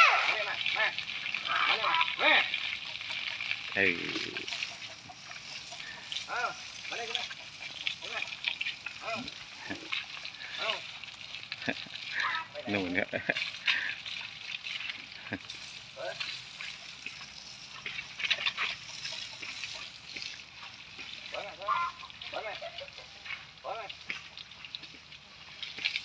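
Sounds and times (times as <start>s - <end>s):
garden hose water spraying: 0.0s - 26.0s.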